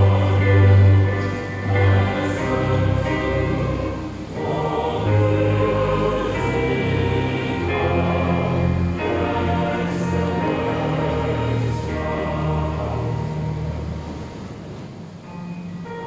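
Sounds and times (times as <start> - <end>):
choir singing: 0.0 - 14.8
piano and keyboard: 0.0 - 16.0.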